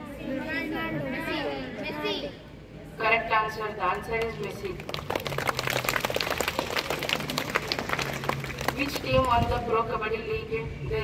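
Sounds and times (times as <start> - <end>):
children clapping: 4.2 - 9.4.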